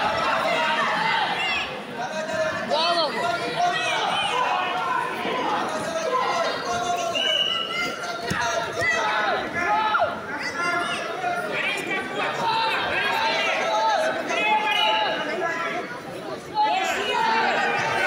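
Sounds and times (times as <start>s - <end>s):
crowd calling out and chattering: 0.0s - 18.0s.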